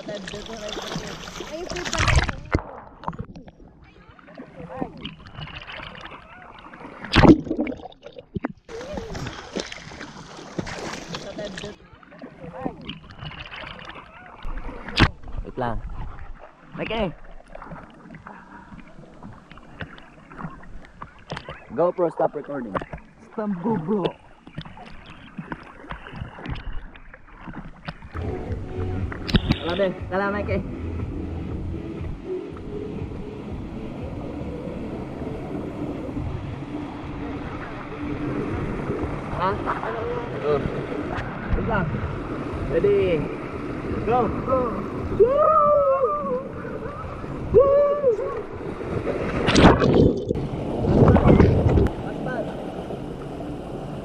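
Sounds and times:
water sloshing and splashing: 0.0 - 30.0, 31.0 - 54.0
swimmer calling out: 42.7 - 48.8.

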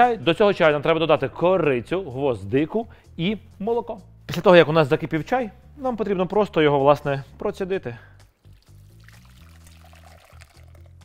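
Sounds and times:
quiet background music: 0.0 - 11.0
tea trickling through strainer: 8.4 - 11.0.

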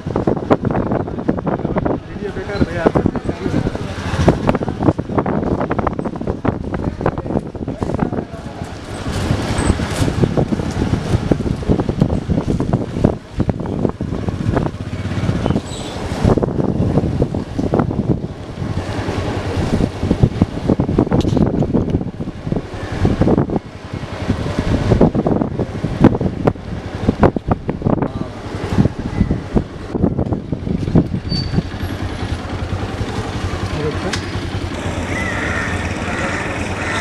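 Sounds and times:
steady low rumble: 0.0 - 36.9
motor vehicle running: 0.0 - 37.0
wind buffeting microphone: 0.0 - 37.0.

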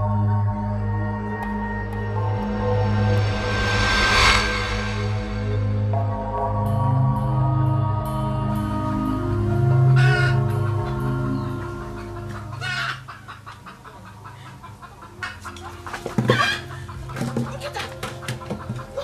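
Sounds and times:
soft music of held tones: 5.8 - 19.0
chickens clucking: 9.5 - 19.0
loud chicken call: 9.6 - 13.6, 15.2 - 17.3.

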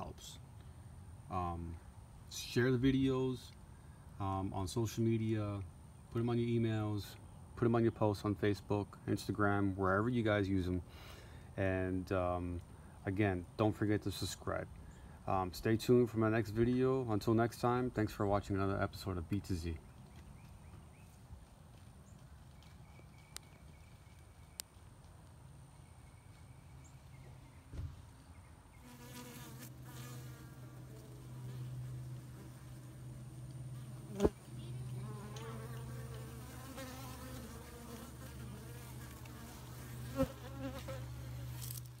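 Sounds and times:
bees buzzing: 28.8 - 41.7.

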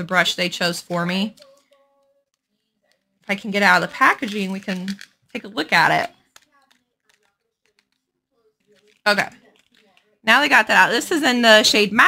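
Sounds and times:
packaging clicks and rustles: 6.0 - 10.2.

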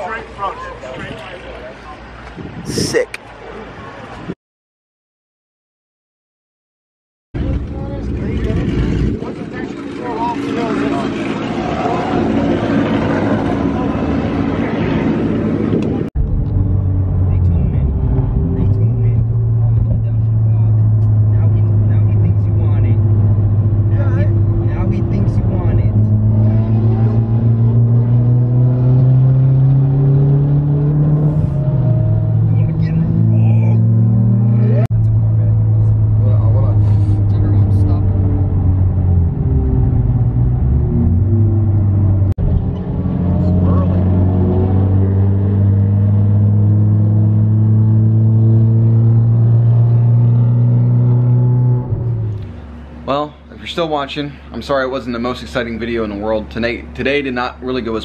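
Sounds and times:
car engine droning in cabin: 7.4 - 53.1.

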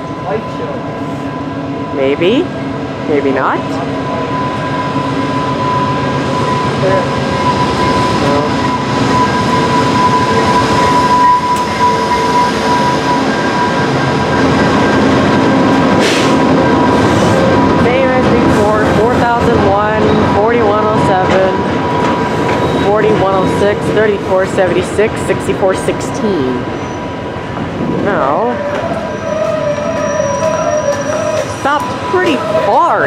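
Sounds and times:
diesel locomotive engine drone: 0.0 - 33.0
train coaches rolling by: 0.0 - 33.0
train brakes squealing: 3.7 - 17.6, 21.9 - 23.5, 26.5 - 27.2, 28.1 - 33.0.

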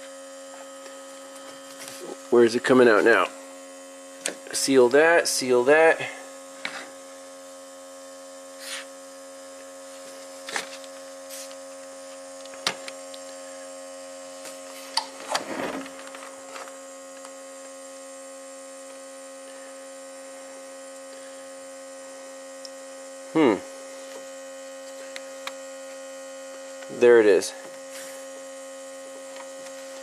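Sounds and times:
air pump humming: 0.0 - 30.0.

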